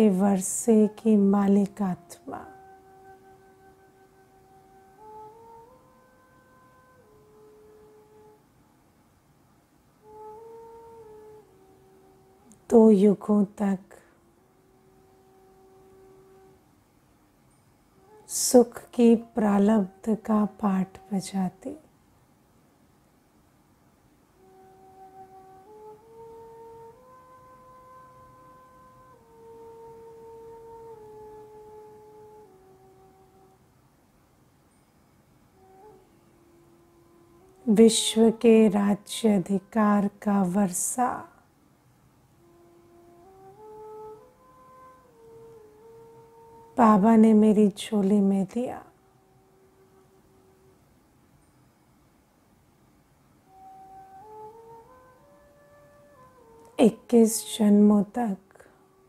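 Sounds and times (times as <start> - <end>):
soft held music tone: 0.0 - 59.0.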